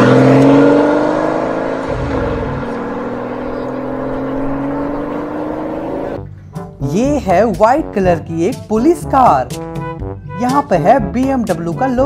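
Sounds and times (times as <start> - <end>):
car engine accelerating: 0.0 - 6.5.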